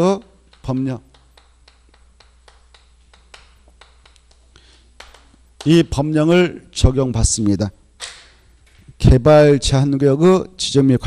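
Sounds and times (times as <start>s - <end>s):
steady low hum: 0.0s - 11.0s
chalk tapping on blackboard: 0.5s - 5.8s.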